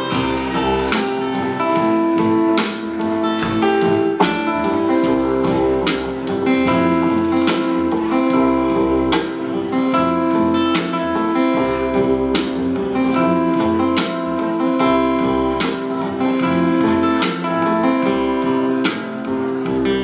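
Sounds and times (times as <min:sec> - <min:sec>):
acoustic guitar strumming chords: 0:00.0 - 0:20.0
plucked upright bass: 0:00.0 - 0:20.0.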